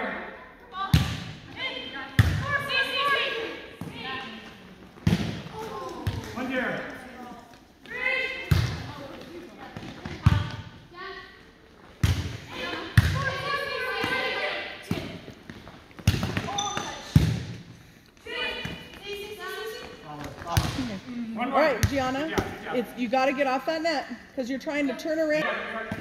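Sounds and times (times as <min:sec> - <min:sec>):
players' voices: 0:00.0 - 0:26.0
volleyball thuds: 0:05.0 - 0:06.5, 0:08.4 - 0:09.0, 0:12.0 - 0:17.7, 0:20.2 - 0:21.0, 0:21.7 - 0:22.7.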